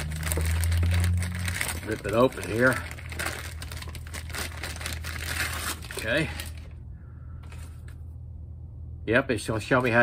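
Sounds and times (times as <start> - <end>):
plastic bag tearing and crinkling: 0.0 - 6.7.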